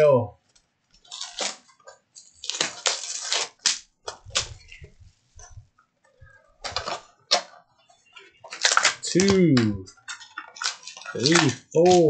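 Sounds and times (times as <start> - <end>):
plastic shrink-wrap tearing: 1.0 - 4.8, 6.6 - 7.6, 8.4 - 12.0.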